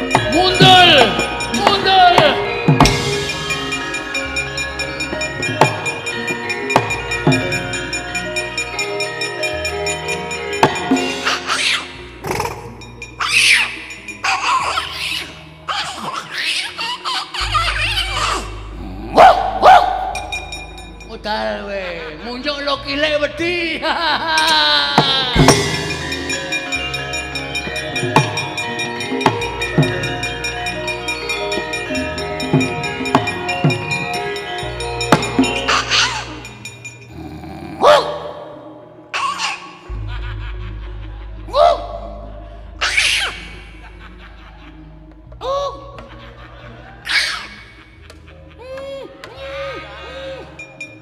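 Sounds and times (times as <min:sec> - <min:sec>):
gamelan music: 0:00.0 - 0:37.8, 0:38.4 - 0:51.0.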